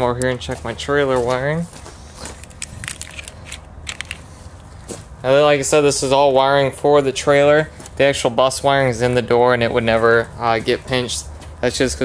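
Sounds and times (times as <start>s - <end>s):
wiring being handled clicking: 2.3s - 4.3s.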